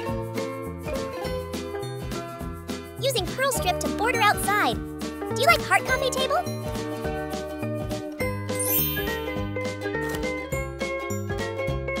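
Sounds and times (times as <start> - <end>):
upbeat children's music: 0.0 - 12.0
rising twinkling chime: 8.6 - 9.6.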